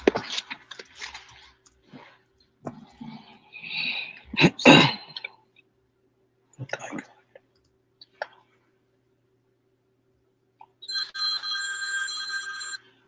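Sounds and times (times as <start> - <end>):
electronic ringing tone: 10.8 - 13.0.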